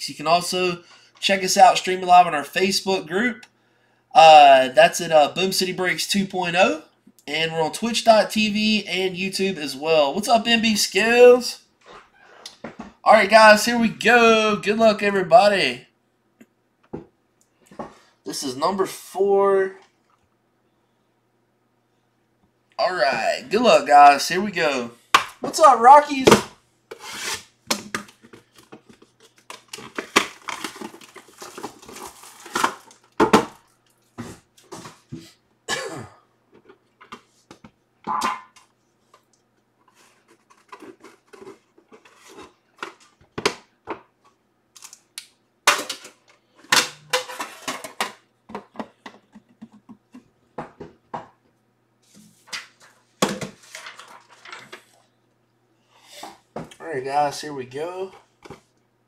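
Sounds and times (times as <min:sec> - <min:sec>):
plastic wrap crinkling and tearing: 0:29.2 - 0:34.0.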